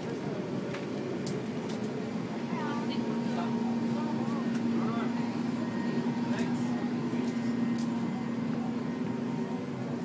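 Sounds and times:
faint passenger voices: 0.0 - 10.0.

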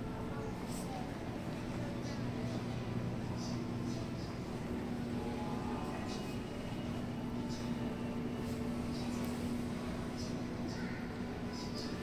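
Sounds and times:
faint indistinct voices: 0.0 - 12.0
low electrical hum: 0.0 - 12.0.

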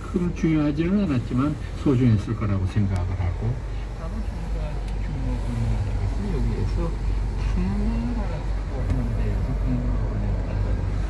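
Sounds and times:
car engine idling: 0.0 - 11.0
man talking on car radio: 0.0 - 11.0.

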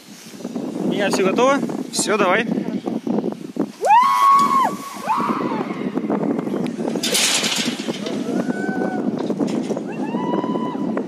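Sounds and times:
low wind rush: 0.0 - 11.0.

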